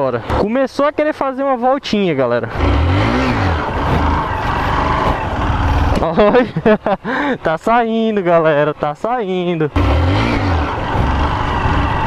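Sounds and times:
motorcycle engine running: 2.5s - 6.1s, 9.8s - 12.0s.

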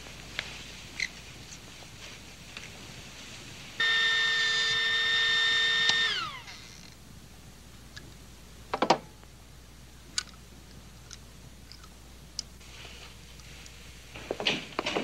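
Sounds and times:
centrifuge whine: 3.8s - 7.0s.

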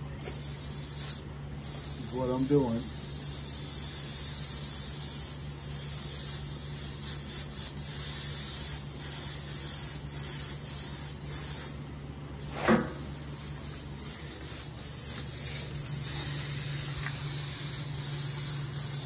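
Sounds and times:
spray gun hissing: 0.2s - 11.8s, 12.4s - 19.0s.

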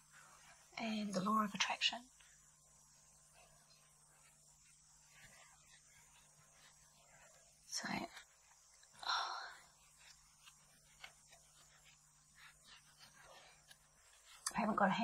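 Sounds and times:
faint steady hum: 0.0s - 15.0s
woman speaking: 0.8s - 2.1s, 7.7s - 8.2s, 14.4s - 15.0s.

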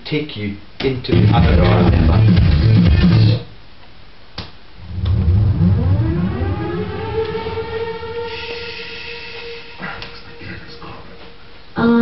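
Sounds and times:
siren-like tone winding up: 4.9s - 10.4s.

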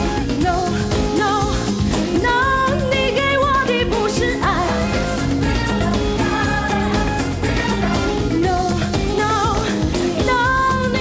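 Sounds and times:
pop backing music: 0.0s - 11.0s
woman singing: 0.0s - 11.0s.

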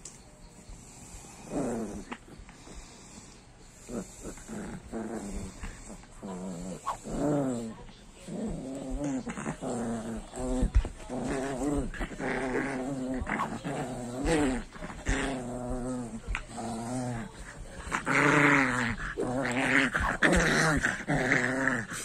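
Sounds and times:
small dog play growling: 0.7s - 22.0s.

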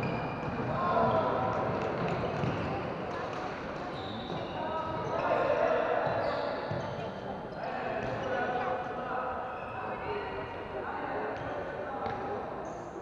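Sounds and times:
shoes squeaking on court floor: 0.0s - 0.7s, 1.8s - 8.8s.

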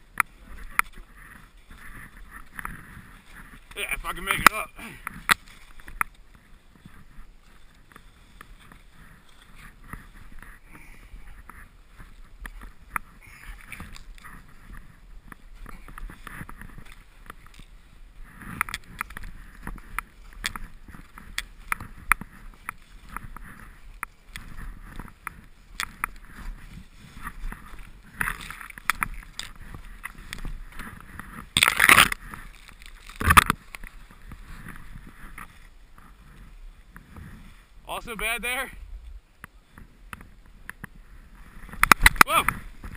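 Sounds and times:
footsteps crunching in snow: 0.0s - 42.9s.

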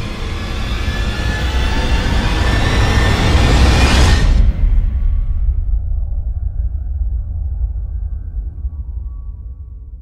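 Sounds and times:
deep cinematic rumble: 4.3s - 10.0s.

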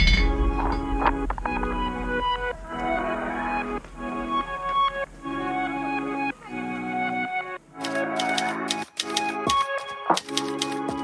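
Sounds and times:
background music sustained notes: 0.0s - 11.0s
typewriter keys clacking: 7.8s - 11.0s.

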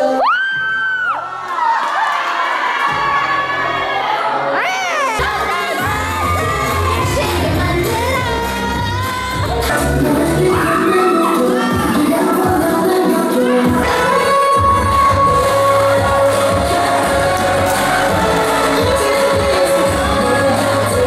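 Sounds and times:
young people cheering and whooping: 0.0s - 12.5s, 14.2s - 21.0s
dance music with bass beat: 5.2s - 21.0s.

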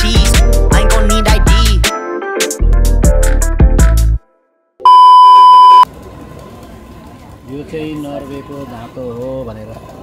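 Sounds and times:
loud steady beep: 4.9s - 5.9s.

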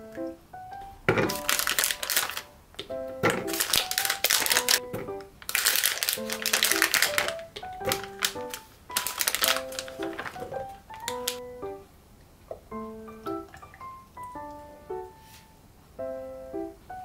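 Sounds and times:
soft background music: 0.0s - 12.0s, 12.7s - 17.0s
plastic pouch crinkling: 1.1s - 11.4s
strawberries clattering into bottle: 1.1s - 11.4s.

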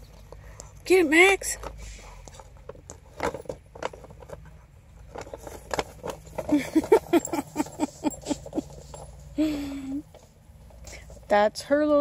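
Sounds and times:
woman laughing: 6.5s - 8.8s.

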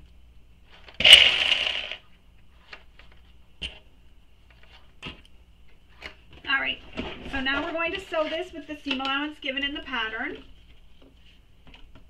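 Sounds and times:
woman talking: 6.4s - 10.5s.

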